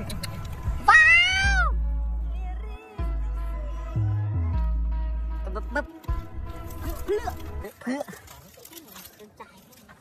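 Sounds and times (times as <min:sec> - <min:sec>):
background music: 0:00.0 - 0:08.6.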